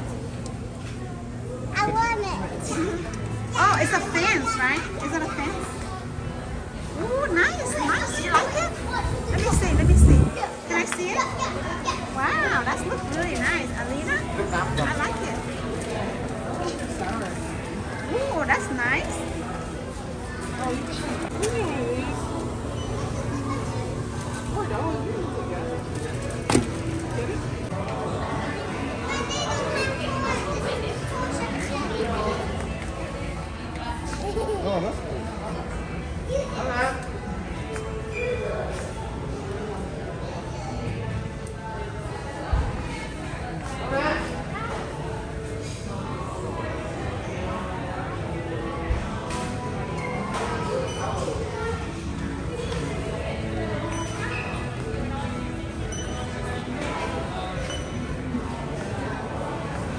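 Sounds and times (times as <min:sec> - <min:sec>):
shop background noise: 0:00.0 - 0:59.9
steady low hum: 0:09.1 - 0:10.6.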